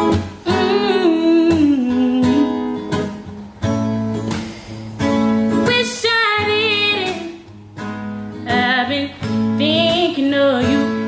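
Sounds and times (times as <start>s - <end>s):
woman singing: 0.0s - 3.4s, 5.5s - 7.6s, 8.3s - 11.0s
acoustic guitar strumming: 0.0s - 11.0s.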